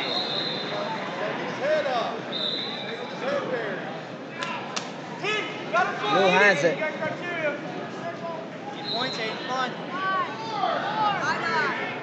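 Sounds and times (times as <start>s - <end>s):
sharp slaps: 4.4s - 5.0s.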